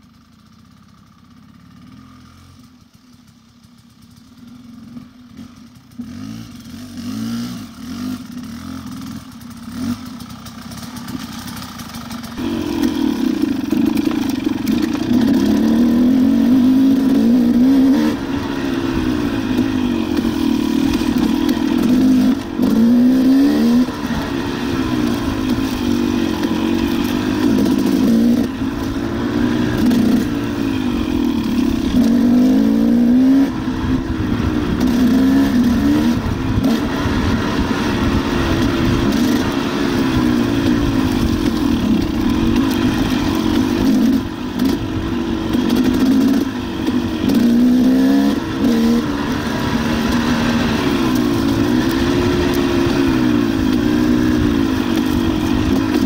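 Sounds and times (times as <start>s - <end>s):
dirt bike engine revving: 4.5s - 56.0s.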